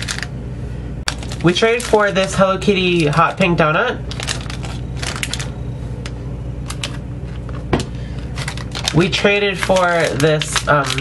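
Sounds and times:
plastic packaging crinkling: 0.0s - 0.3s, 1.1s - 11.0s
steady low hum: 0.0s - 11.0s.

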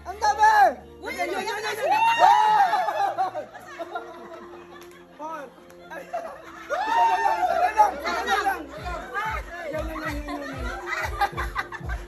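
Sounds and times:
people talking and calling out: 0.0s - 12.0s
music with thudding bass beat: 8.8s - 12.0s.

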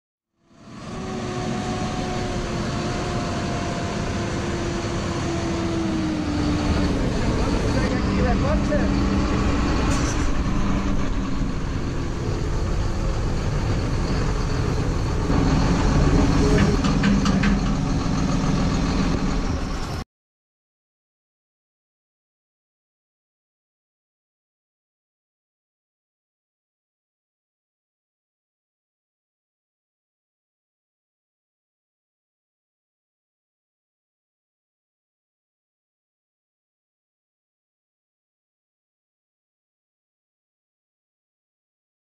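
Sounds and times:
tractor diesel engine running: 0.5s - 20.0s.

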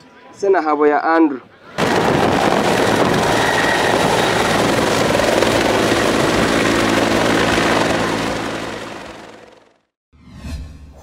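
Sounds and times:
helicopter rotor and turbine: 1.8s - 10.0s.

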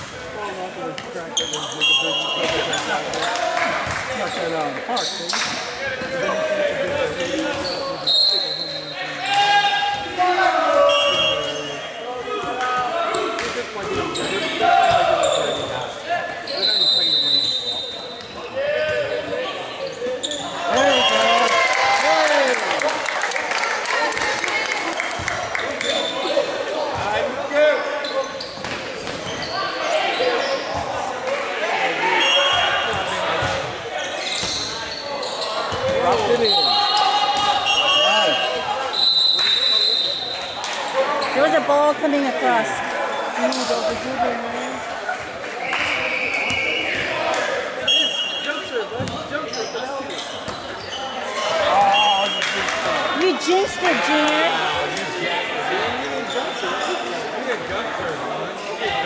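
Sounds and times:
players shouting and chatting: 0.0s - 59.0s
volleyballs bouncing and struck: 49.0s - 49.3s.

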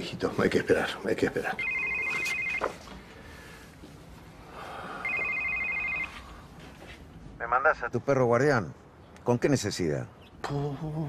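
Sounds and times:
mobile phone ringing: 1.5s - 2.9s, 5.0s - 6.4s.

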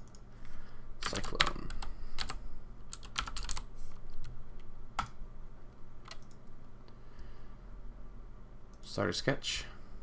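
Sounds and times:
typing on computer keyboard: 1.0s - 3.7s, 6.0s - 6.4s.

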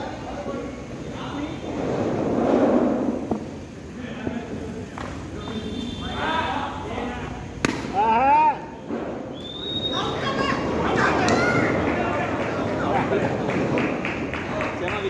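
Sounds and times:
cricket bat striking ball: 7.6s - 8.0s
players shouting: 9.5s - 13.3s.

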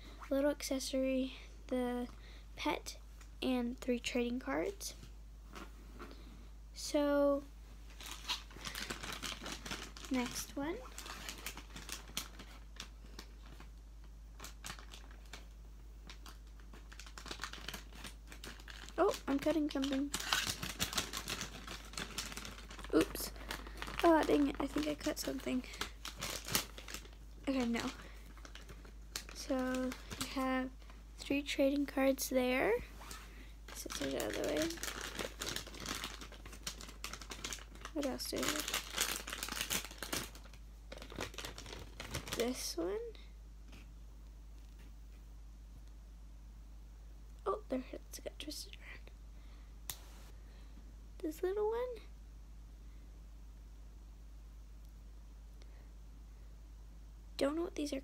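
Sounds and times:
plastic packaging crackling: 7.9s - 32.1s, 32.8s - 43.0s
plastic wrapper crinkling: 7.9s - 43.0s.

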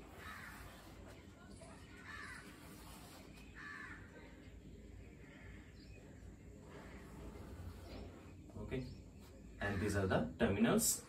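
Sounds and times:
harsh bird calls: 5.1s - 11.0s.

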